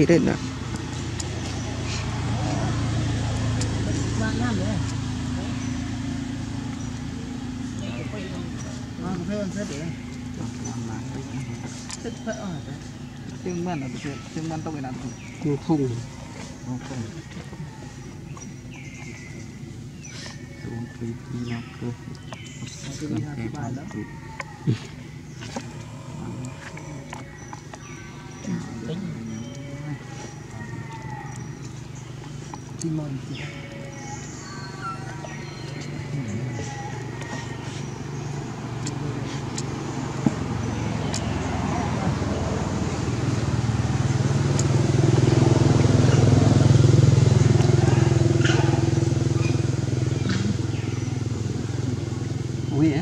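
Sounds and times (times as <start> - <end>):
vehicle engine passing by: 0.0 - 53.0.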